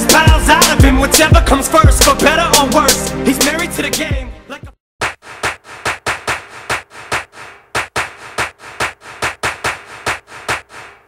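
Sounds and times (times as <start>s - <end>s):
percussion beat: 0.0s - 3.1s, 5.0s - 11.0s.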